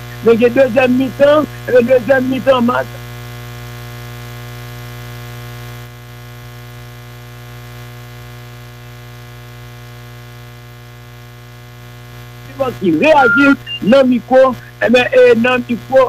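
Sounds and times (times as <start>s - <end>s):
electrical hum: 0.0s - 5.7s, 11.1s - 16.0s.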